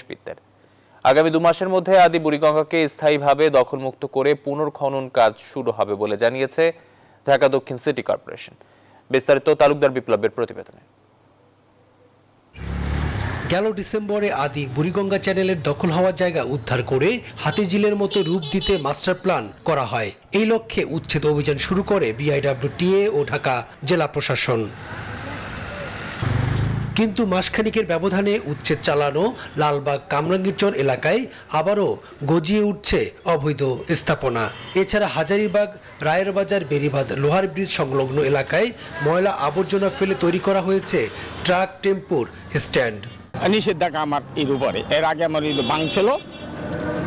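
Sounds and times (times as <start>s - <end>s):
steady noisy background: 0.0s - 47.0s
vehicle engine tone: 12.5s - 19.6s, 20.8s - 34.7s
road traffic: 12.5s - 47.0s
excavator engine running: 12.6s - 13.5s
man speaking: 13.5s - 24.8s, 27.0s - 46.3s.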